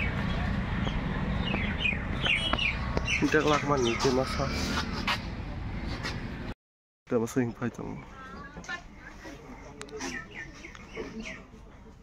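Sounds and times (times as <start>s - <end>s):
small birds chirping: 0.0s - 4.7s, 7.8s - 11.8s.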